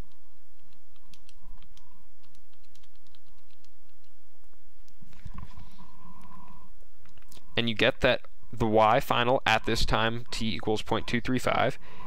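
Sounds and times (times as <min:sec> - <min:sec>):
steady low hum: 0:00.0 - 0:12.0
calculator keys clicking: 0:00.6 - 0:04.1.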